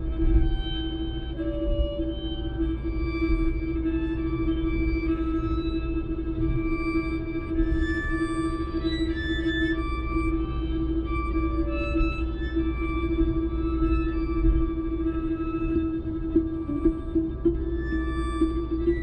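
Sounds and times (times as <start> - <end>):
bowed string drone music: 0.0 - 19.0.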